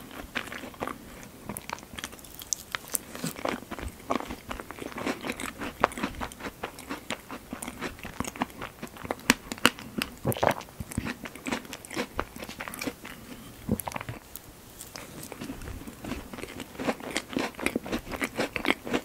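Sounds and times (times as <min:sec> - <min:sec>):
close-miked chewing: 0:00.0 - 0:19.0.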